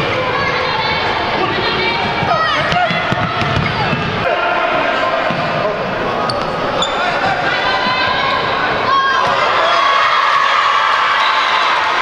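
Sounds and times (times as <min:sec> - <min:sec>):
ball kicked and bouncing: 0:02.7 - 0:04.0
children shouting: 0:07.0 - 0:12.0.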